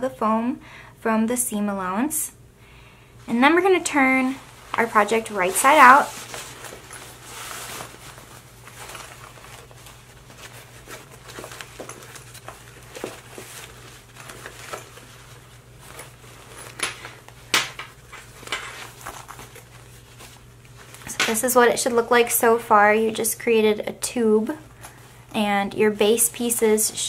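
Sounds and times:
fabric bag rustling and crinkling: 3.6s - 22.6s.

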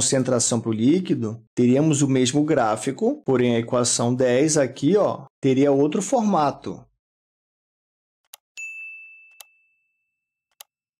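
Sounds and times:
bright bell ding: 8.6s - 10.3s.

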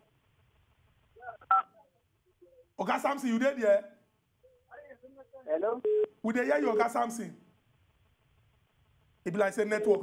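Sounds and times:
man speaking: 6.2s - 7.4s, 9.3s - 10.0s.

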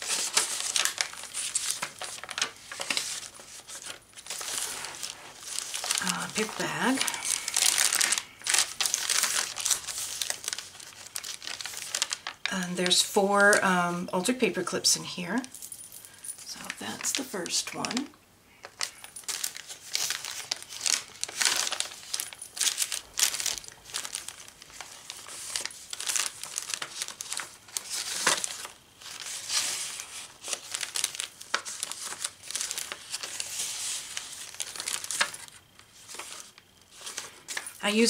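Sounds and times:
paper rustling and crinkling: 0.0s - 14.4s, 16.5s - 38.0s.

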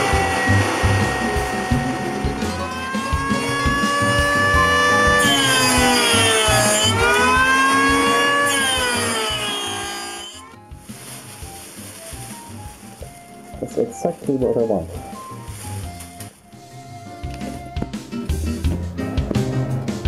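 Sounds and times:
belt sander motor running: 0.0s - 10.4s
wood sanding hiss: 0.0s - 13.6s.

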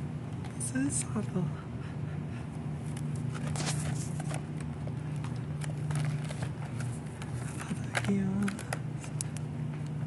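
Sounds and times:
grocery store hum: 0.0s - 10.0s.

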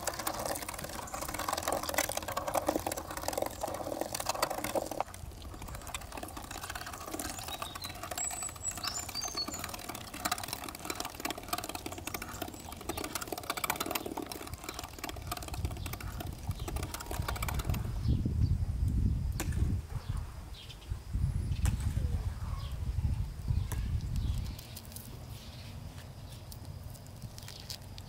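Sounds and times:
meat grinder clicking and squelching: 0.0s - 18.0s.

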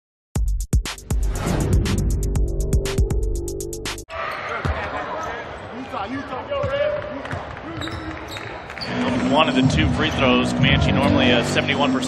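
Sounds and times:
arena crowd noise: 4.1s - 12.0s.

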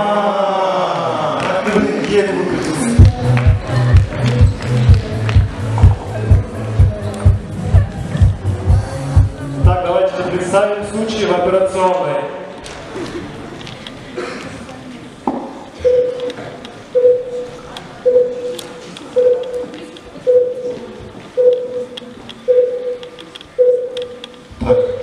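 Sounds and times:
heart monitor beeping: 15.8s - 16.4s, 17.0s - 25.0s.

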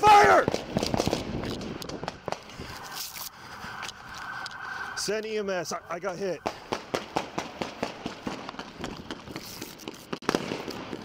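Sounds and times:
camera handling rustling and scraping: 2.6s - 4.6s.

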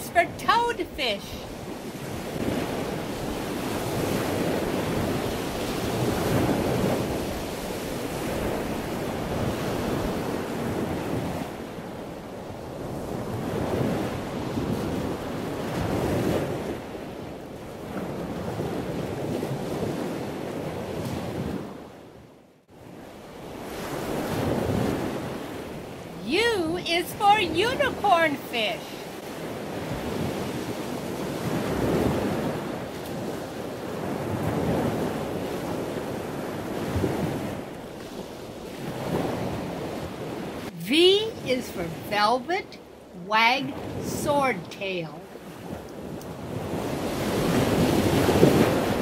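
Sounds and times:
rushing water like surf: 0.0s - 49.0s.

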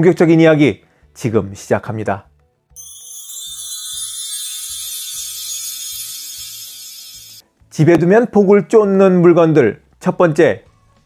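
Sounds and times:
high-pitched shimmer: 2.8s - 7.4s.

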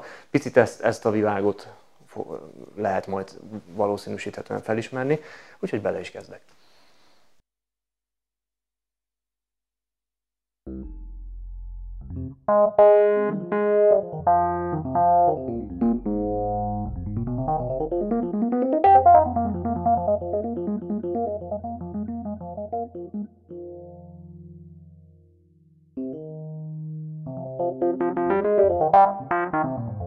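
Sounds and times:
electric piano jazz: 12.0s - 25.0s, 26.0s - 30.0s.

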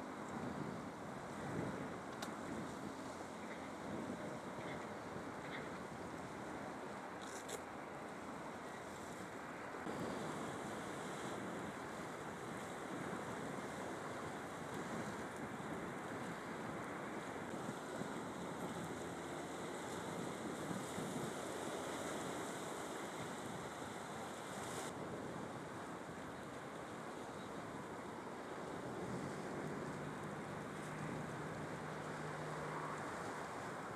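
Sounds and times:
wind on microphone: 0.0s - 7.7s, 8.4s - 33.9s
waves on rocky shore: 0.0s - 33.9s.

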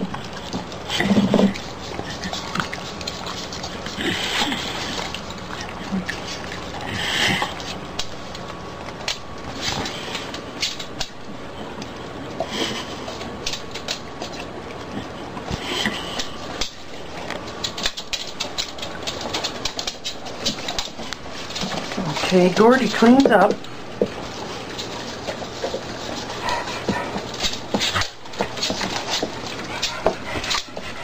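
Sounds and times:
dogs licking bowls: 0.0s - 31.0s.

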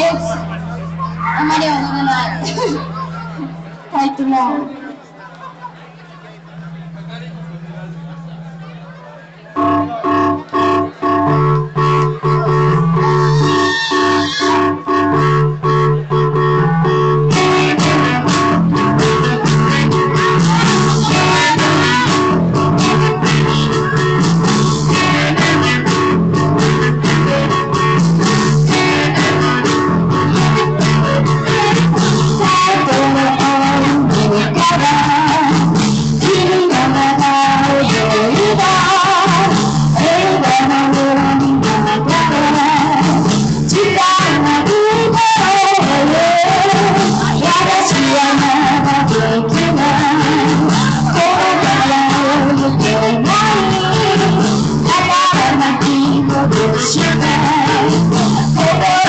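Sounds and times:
live rock band playing: 9.6s - 59.0s.

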